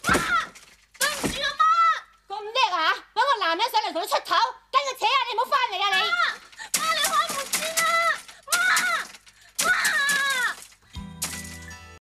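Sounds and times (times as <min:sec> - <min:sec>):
woman shouting pleadingly: 0:04.8 - 0:10.6.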